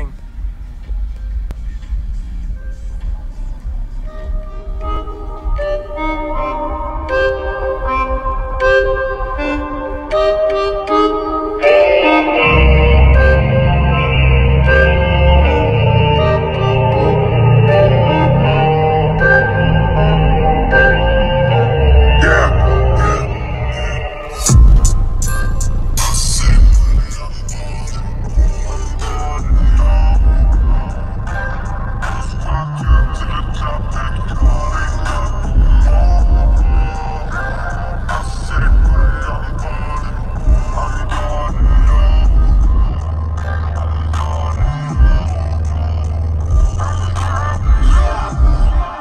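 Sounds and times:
deep bass notes: 0.0 - 49.0
hip-hop music on car stereo: 0.0 - 49.0.

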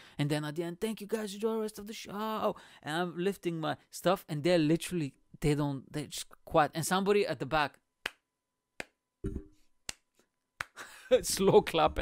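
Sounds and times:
person clapping slowly: 9.9 - 10.8.

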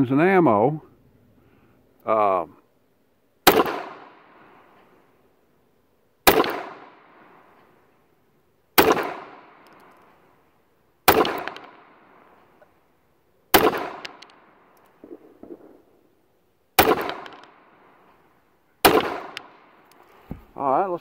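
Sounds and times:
pistol shots echoing: 3.4 - 4.5, 6.2 - 7.5, 8.8 - 9.9, 11.0 - 12.4, 13.5 - 16.2, 16.8 - 17.9, 18.8 - 19.9.

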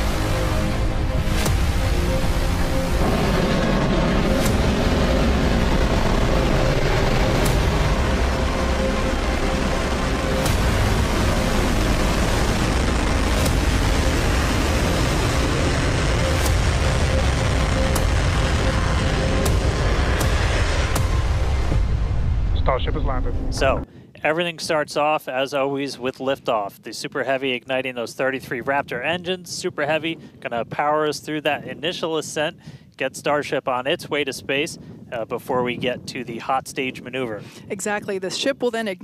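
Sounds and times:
rocket engine rumble and hiss: 0.0 - 32.6, 35.0 - 38.0.

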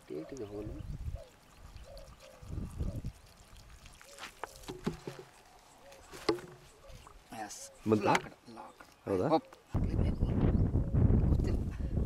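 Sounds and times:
water trickling into soil: 0.0 - 9.7.

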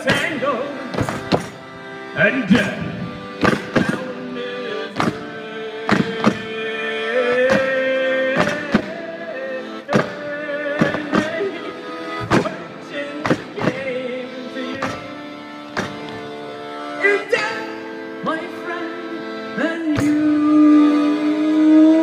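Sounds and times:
accordion chords: 0.0 - 22.0
folk band playing: 0.0 - 22.0.

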